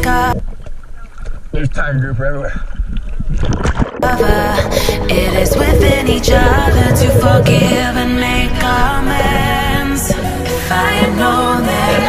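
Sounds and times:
muffled underwater sound: 0.0 - 12.0
background music: 4.0 - 12.0.

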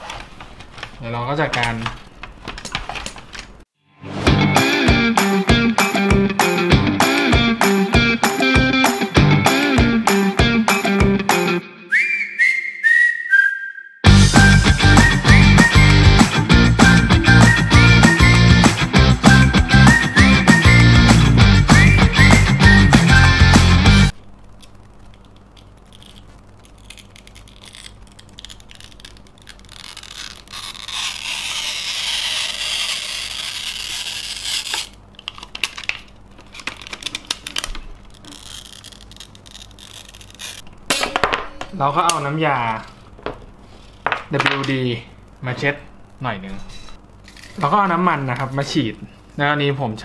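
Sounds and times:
whistle-like melody: 11.8 - 23.6
film peeling with crackling tear: 24.5 - 40.7.

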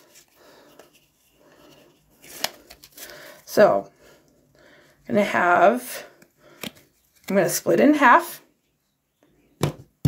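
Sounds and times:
playing cards rustling: 0.0 - 3.4, 6.4 - 7.4.

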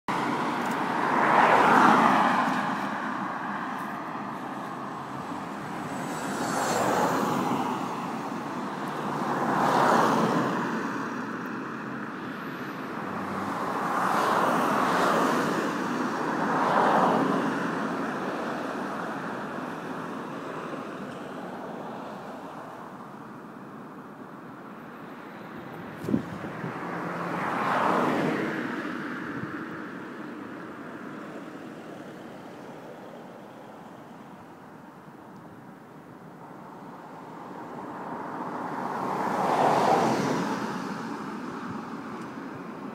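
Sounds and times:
cars driving past: 0.1 - 23.1, 24.7 - 34.4, 36.3 - 42.9.

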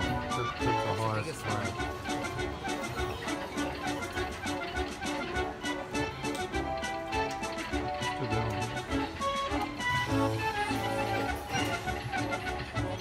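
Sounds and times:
jingly slot machine tune: 0.0 - 13.0.

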